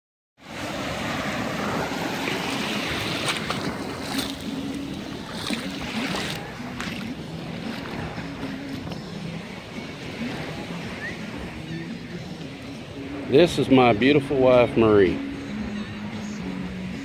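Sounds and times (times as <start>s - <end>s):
surf washing over sand: 0.4s - 17.0s.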